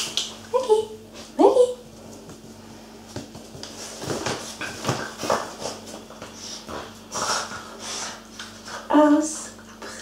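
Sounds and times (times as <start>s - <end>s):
puppy scuffling on tiled floor: 1.1s - 9.0s.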